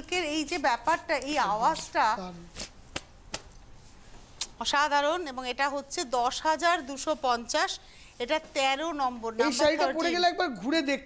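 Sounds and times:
woman's voice: 0.0s - 2.5s, 4.6s - 10.3s.

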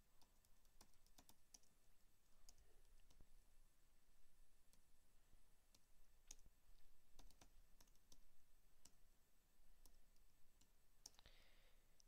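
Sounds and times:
computer keyboard clicks: 0.2s - 1.7s, 7.2s - 8.2s.

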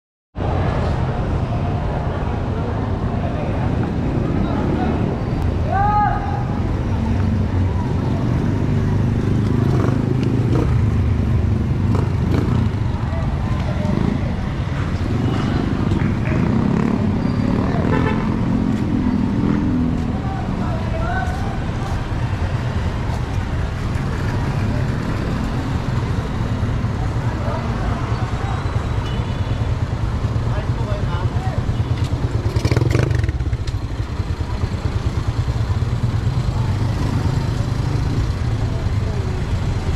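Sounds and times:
traffic rumble: 0.4s - 39.9s
people's voices: 0.7s - 39.9s.

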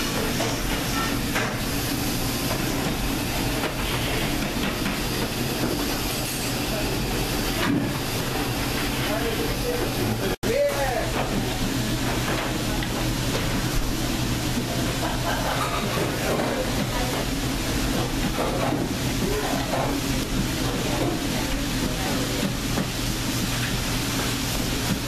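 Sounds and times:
kitchen machine hum and hiss: 0.0s - 25.0s.

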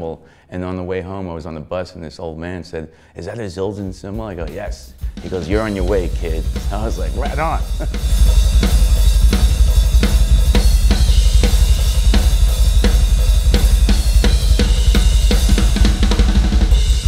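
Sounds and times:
drum kit rock groove: 3.8s - 17.0s
bass drum: 4.1s - 17.0s
cymbal wash: 5.0s - 17.0s.

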